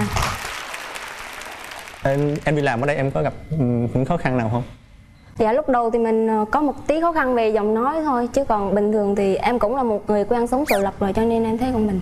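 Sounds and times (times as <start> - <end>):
audience applauding: 0.0 - 3.0.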